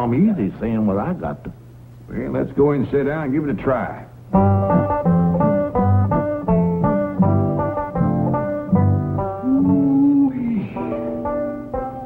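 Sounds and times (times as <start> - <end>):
bluegrass banjo music: 4.3 - 12.0
picked banjo notes: 4.3 - 12.0.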